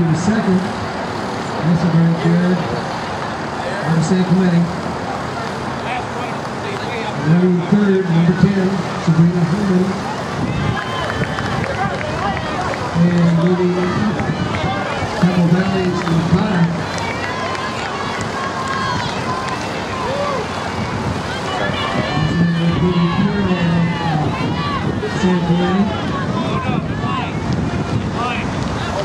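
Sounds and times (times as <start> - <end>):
man speaking over loudspeaker: 0.0 - 0.8, 1.6 - 2.8, 3.6 - 4.8, 5.8 - 10.1, 12.1 - 14.4, 15.0 - 16.9, 21.5 - 24.3, 25.0 - 27.4
spectators shouting encouragement: 6.3 - 29.0.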